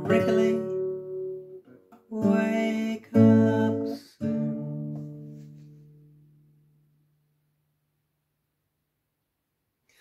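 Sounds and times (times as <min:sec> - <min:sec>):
classical guitar chords strummed: 0:00.0 - 0:07.7.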